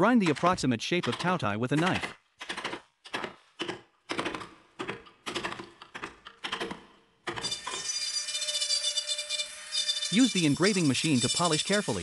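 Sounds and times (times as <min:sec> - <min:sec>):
hammer striking chisel: 0:00.0 - 0:12.0
rotary engraving tool whine: 0:07.4 - 0:12.0.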